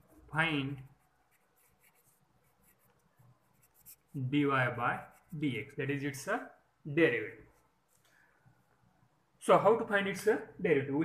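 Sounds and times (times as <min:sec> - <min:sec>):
pen scratching while writing: 0:00.9 - 0:04.1.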